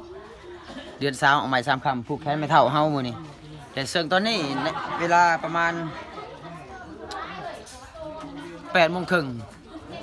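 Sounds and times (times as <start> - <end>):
background chatter of voices: 0.0 - 10.0
close speech: 0.0 - 10.0.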